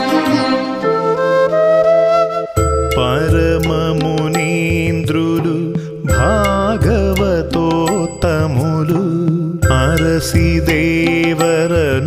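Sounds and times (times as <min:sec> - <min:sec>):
person singing ornamented phrases: 0:02.8 - 0:12.0.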